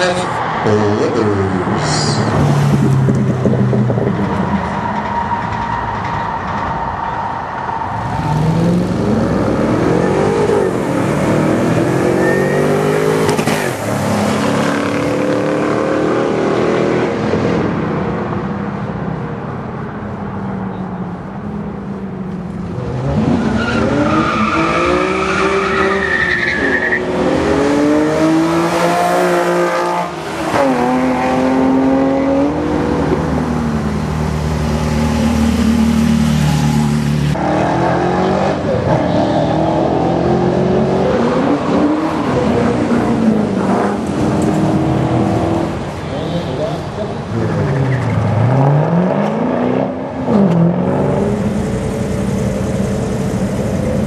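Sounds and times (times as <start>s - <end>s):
car engines accelerating hard: 0.0s - 5.3s, 7.2s - 20.4s, 21.1s - 54.0s.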